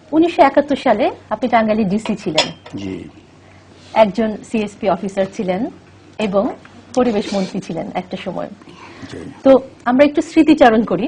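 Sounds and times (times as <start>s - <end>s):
faint low hum: 0.0s - 11.0s
person speaking: 2.8s - 3.2s, 6.9s - 7.8s, 8.7s - 9.6s
person talking: 2.8s - 3.2s, 7.0s - 7.8s, 9.0s - 9.6s.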